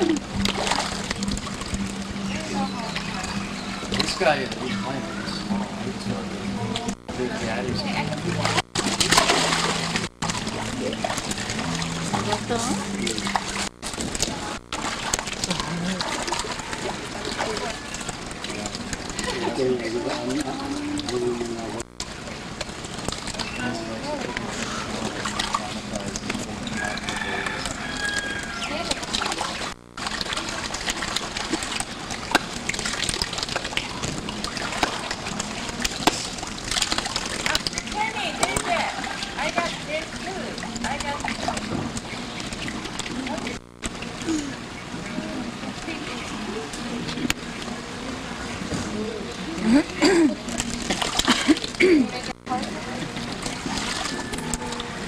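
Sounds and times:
noisy outdoor background: 0:00.0 - 0:55.0
water splashing and sloshing: 0:00.0 - 0:55.0
people talking: 0:02.3 - 0:08.6, 0:12.2 - 0:13.4, 0:14.2 - 0:14.6, 0:15.4 - 0:17.8, 0:18.5 - 0:21.8, 0:23.4 - 0:27.8, 0:28.6 - 0:29.6, 0:37.5 - 0:41.9, 0:43.1 - 0:43.6, 0:44.2 - 0:53.8.

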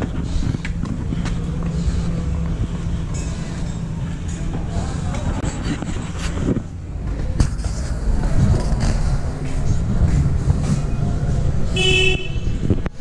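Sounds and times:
low rumble: 0:00.0 - 0:11.8
vehicle horn honk: 0:11.8 - 0:12.6.

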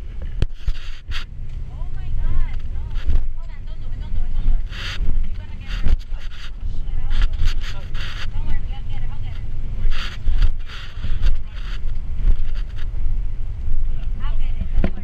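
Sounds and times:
deep engine rumble: 0:00.0 - 0:15.0.

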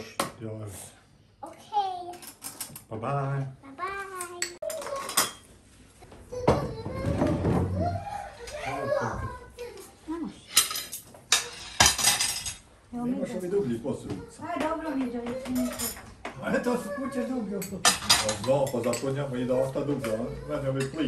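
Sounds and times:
cutlery and dishes clinking: 0:02.1 - 0:02.9, 0:04.2 - 0:05.5, 0:10.5 - 0:12.7, 0:14.6 - 0:16.4, 0:17.6 - 0:21.0.

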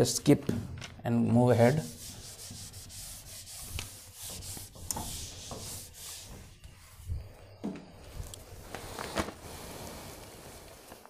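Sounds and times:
eraser wiping whiteboard: 0:01.6 - 0:07.0.

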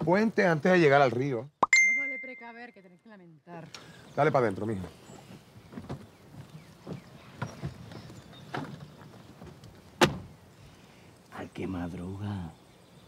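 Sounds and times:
car door slamming: 0:10.0 - 0:10.3.

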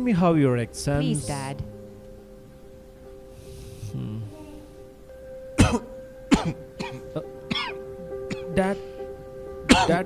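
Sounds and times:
background music with held notes: 0:00.0 - 0:10.0
man coughing harshly: 0:05.6 - 0:08.5, 0:09.7 - 0:10.0.

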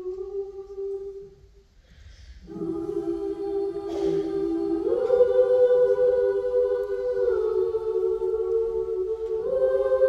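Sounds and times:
a cappella group singing: 0:00.0 - 0:10.0.

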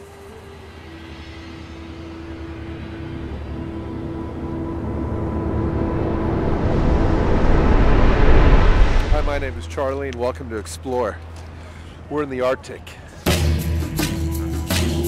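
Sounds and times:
low rumbling drone: 0:00.0 - 0:11.8
rushing whoosh: 0:00.8 - 0:09.7.

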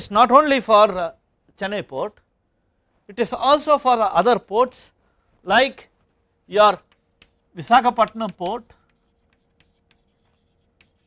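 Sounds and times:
chalk scratching on chalkboard: 0:06.6 - 0:11.0.

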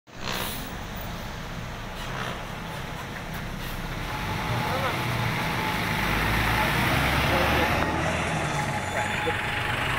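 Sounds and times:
bus engine humming: 0:00.1 - 0:09.9
road noise: 0:00.1 - 0:09.9.

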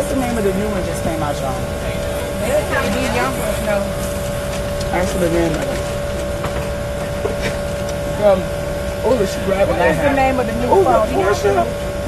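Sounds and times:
constant mid-pitched hum: 0:00.0 - 0:12.0
ventilation rush: 0:00.0 - 0:12.0.

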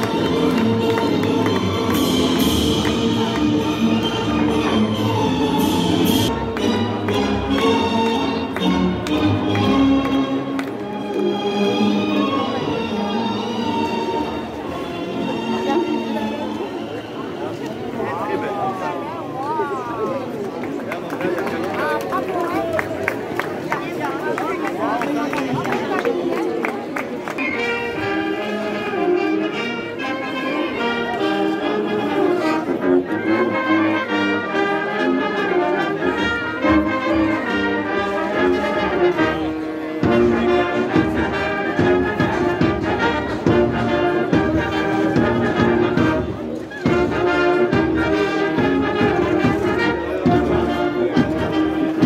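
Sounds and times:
brass band playing: 0:00.0 - 0:18.3, 0:27.3 - 0:52.0
crowd voices: 0:00.0 - 0:52.0.

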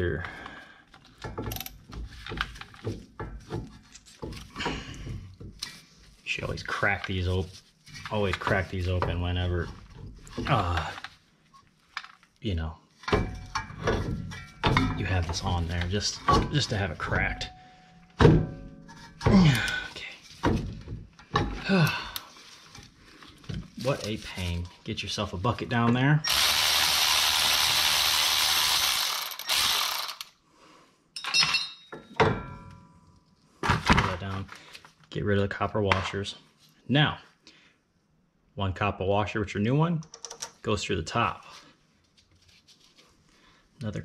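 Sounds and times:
cordless ratchet whirring and clicking: 0:26.3 - 0:30.4.

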